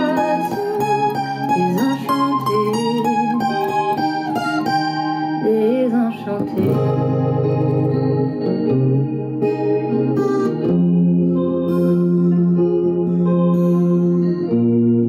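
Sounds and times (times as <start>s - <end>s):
plucked steel-string guitar: 0.0s - 15.0s
strummed guitar chord: 0.0s - 15.0s.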